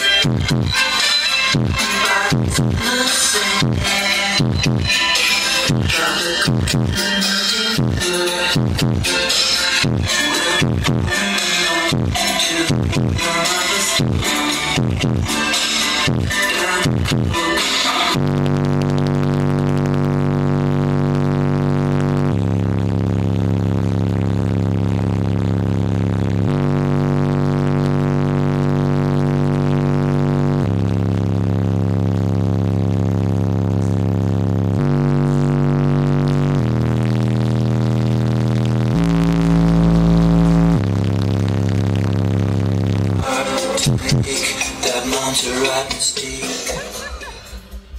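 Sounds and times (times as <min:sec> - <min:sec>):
bass-heavy music through car stereo: 0:00.0 - 0:47.9.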